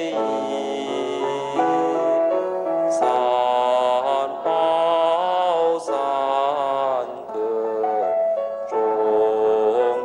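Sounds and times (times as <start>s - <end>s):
melodic buddhist chanting: 0.0s - 10.0s.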